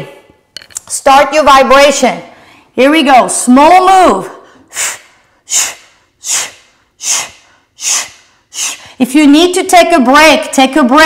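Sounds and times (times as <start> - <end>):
woman's sharp hissing breaths: 4.4 - 9.0.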